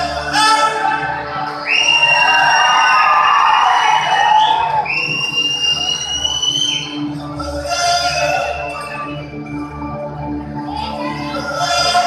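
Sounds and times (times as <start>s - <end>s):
dance music: 0.0s - 12.0s
long shrill whistles: 1.6s - 7.0s.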